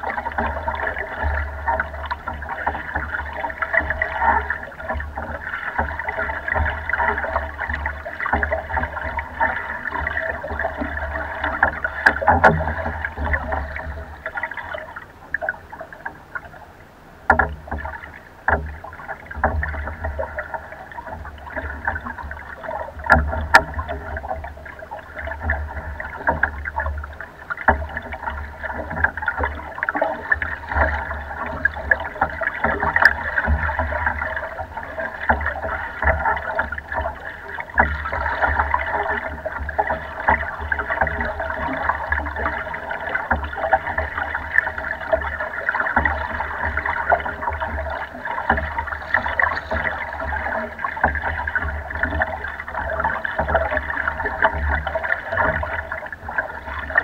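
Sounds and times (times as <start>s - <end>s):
water splashing against boat hull: 0.0s - 57.0s.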